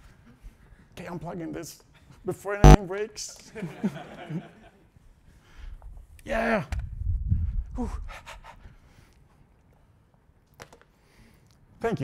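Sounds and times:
laughter: 3.4s - 5.0s.

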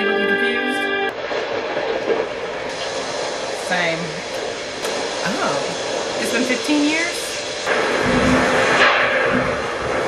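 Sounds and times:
heavy rain hissing: 1.1s - 10.0s
thunder rumbling: 1.1s - 10.0s.

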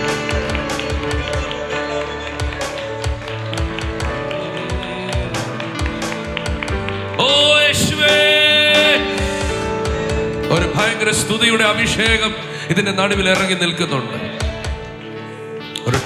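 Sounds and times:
sustained keyboard chords: 0.0s - 16.0s
worship band music: 0.0s - 16.0s
person singing loudly: 7.2s - 9.8s.

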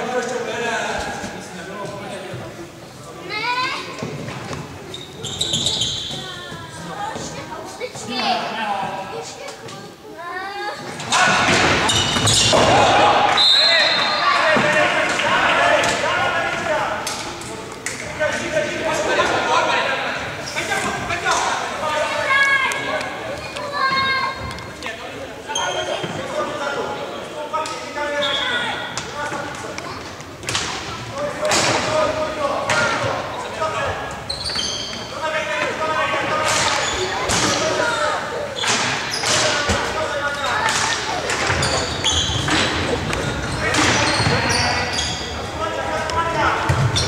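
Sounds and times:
shoes squeaking on wooden court: 4.0s - 8.1s, 10.8s - 12.6s, 23.3s - 24.8s, 25.4s - 26.4s, 32.7s - 35.3s, 36.4s - 45.5s, 46.6s - 47.0s
people shouting in a sports hall: 10.2s - 17.4s, 18.2s - 29.7s, 30.6s - 47.0s
referee's whistle: 13.3s - 14.3s, 28.2s - 28.7s.

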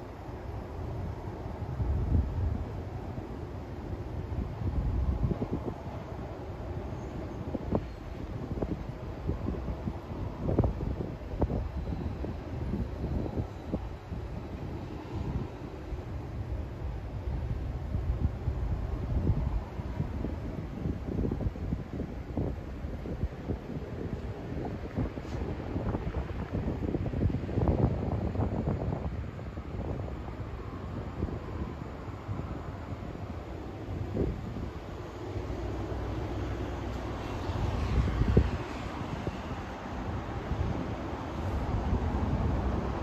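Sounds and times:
distant city traffic hum: 0.0s - 43.0s
wind buffeting microphone: 0.0s - 43.0s.

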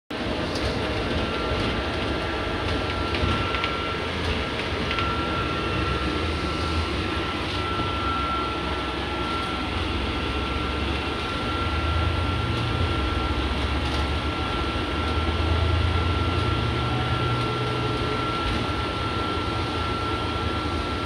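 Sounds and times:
bus engine and road rumble: 0.1s - 21.0s
thin constant whine: 0.5s - 21.0s.

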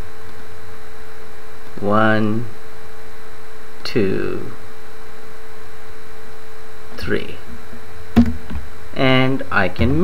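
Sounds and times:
mains hum: 0.0s - 10.0s.

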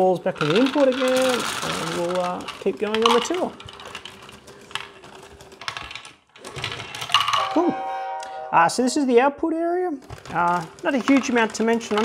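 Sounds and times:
plastic balls clicking and clattering: 0.0s - 7.6s, 10.0s - 12.0s.

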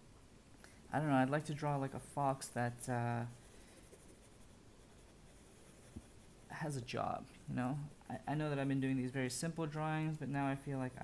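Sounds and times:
pencil scratching on paper: 1.3s - 6.8s, 10.0s - 11.0s.

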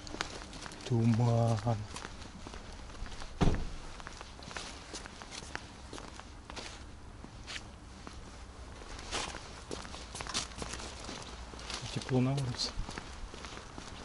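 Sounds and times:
footsteps on pavement: 0.0s - 14.0s.

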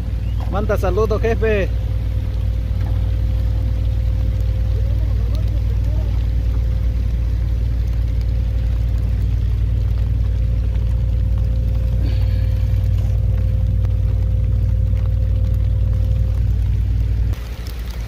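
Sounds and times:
engine running steadily: 0.0s - 18.0s.

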